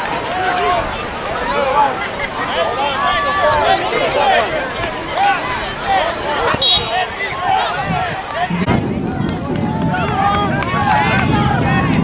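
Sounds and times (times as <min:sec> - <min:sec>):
overlapping voices calling out: 0:00.0 - 0:12.0.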